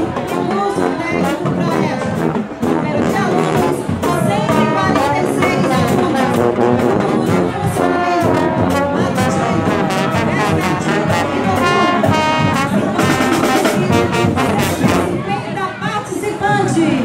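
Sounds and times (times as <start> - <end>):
drums beating time: 0.0 - 15.5
marching band brass playing: 0.0 - 16.7.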